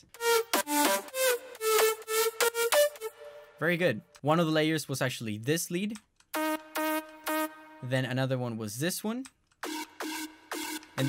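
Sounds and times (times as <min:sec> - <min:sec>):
distorted synth lead melody: 0:00.0 - 0:03.6, 0:06.3 - 0:07.9, 0:09.6 - 0:11.0.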